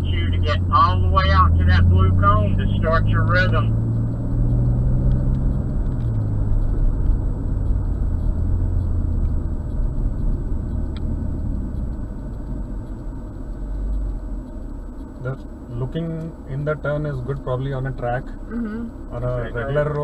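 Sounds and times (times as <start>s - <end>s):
car engine from inside cabin: 0.0s - 20.0s.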